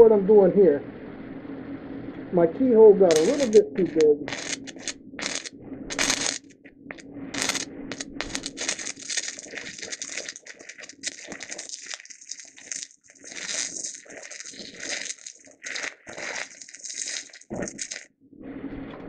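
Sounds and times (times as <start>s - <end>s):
welding arc crackling: 3.1s - 18.1s.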